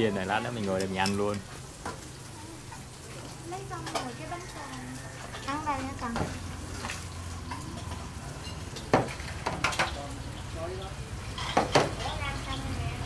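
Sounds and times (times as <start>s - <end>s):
food sizzling in oil: 0.0s - 13.0s
utensils clinking on dishes: 0.3s - 10.1s, 11.2s - 12.4s.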